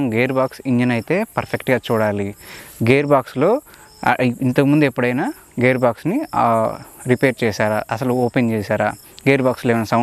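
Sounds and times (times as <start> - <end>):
crickets chirping: 0.0 - 10.0
man talking: 0.0 - 10.0.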